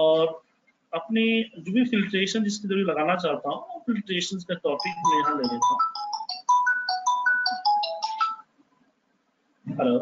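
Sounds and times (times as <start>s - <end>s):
phone ringtone melody: 4.8s - 8.5s.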